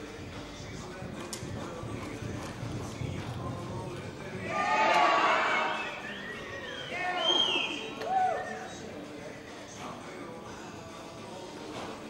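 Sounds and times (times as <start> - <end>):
horse hoofbeats on dirt: 0.1 - 4.4.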